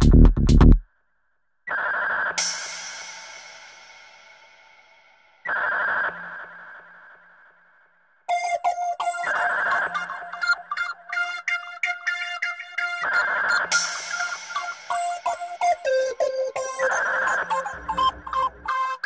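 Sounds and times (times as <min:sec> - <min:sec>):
choppy synth pattern: 0:08.3 - 0:19.0.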